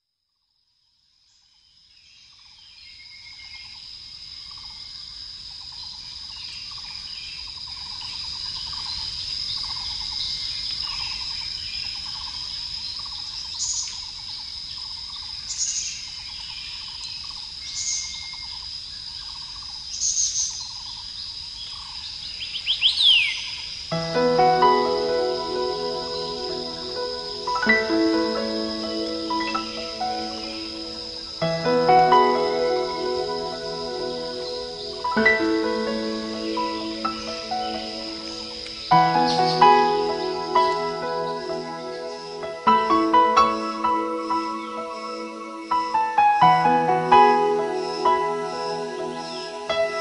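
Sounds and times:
high insect trill: 1.6s - 50.0s.

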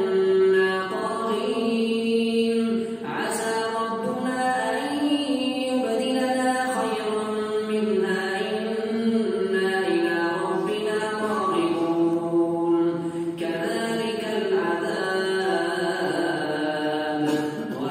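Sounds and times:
man chanting into microphone: 0.0s - 17.9s.

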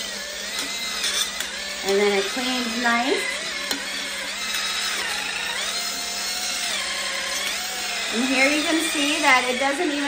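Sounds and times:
electric scrubber motor whine: 0.0s - 10.0s.

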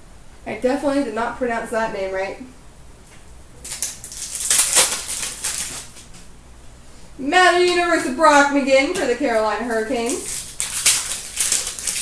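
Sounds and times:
wrapper crinkling: 3.6s - 6.1s, 9.0s - 12.0s.

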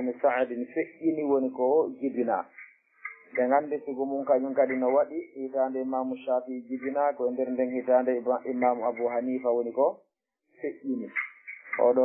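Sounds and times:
man speaking: 0.0s - 2.5s, 3.3s - 10.0s, 10.6s - 12.0s.

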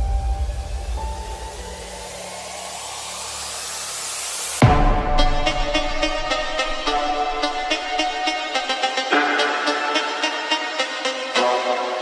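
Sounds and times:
white noise riser hiss: 0.0s - 8.9s
electronic music: 0.0s - 12.0s.

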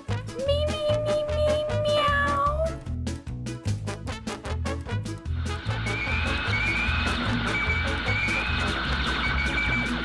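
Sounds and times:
cat meowing: 0.8s - 2.8s
music with steady beat: 3.1s - 10.0s.

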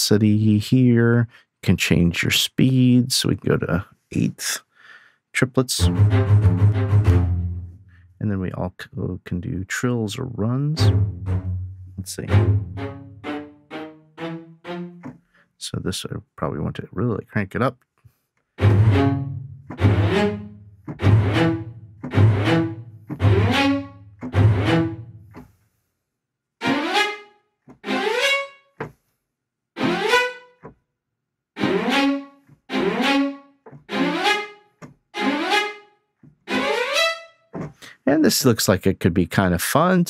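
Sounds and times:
fast rising string runs: 5.8s - 7.8s, 18.6s - 25.2s, 31.6s - 34.5s
deep bass: 5.8s - 8.4s, 10.2s - 13.3s, 18.6s - 25.3s.

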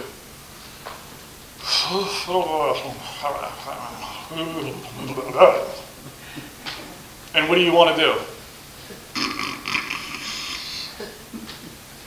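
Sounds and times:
man mumbling wordlessly: 1.6s - 6.1s.

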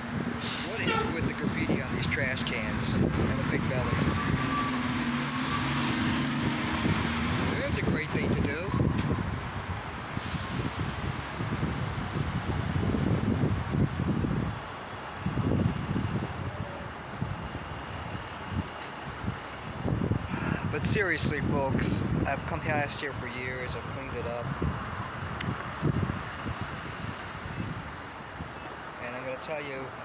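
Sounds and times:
steady engine hum: 0.0s - 30.0s
vehicles passing close by: 0.0s - 30.0s.

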